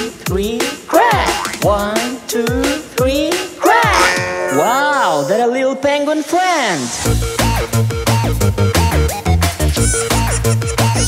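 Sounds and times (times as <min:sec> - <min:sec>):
cartoon voice squeaky calls: 0:03.6 - 0:05.3, 0:09.8 - 0:11.0.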